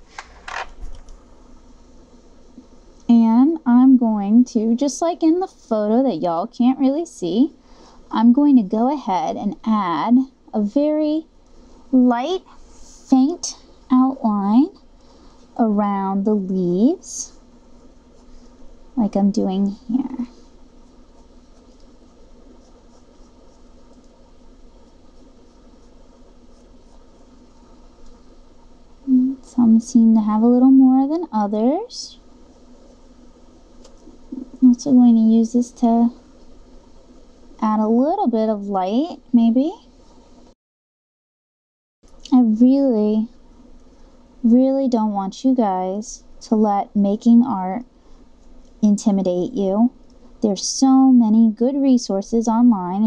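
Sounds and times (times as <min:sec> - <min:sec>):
low room hum: 0:00.0 - 0:40.6, 0:42.0 - 0:53.0
pencil rustling and clicking: 0:20.8 - 0:24.2, 0:24.8 - 0:28.4.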